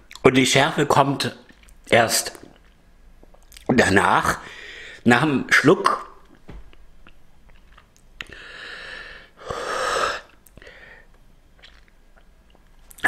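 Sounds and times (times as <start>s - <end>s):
man breathing out hard: 4.4s - 5.0s, 8.3s - 11.1s.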